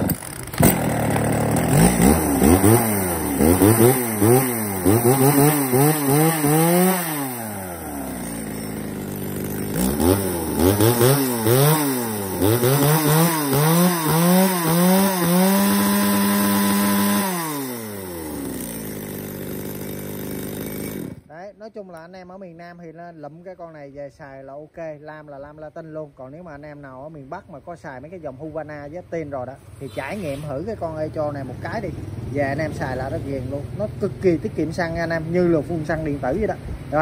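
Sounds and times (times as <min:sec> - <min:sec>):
chainsaw engine revving: 0:00.0 - 0:21.3.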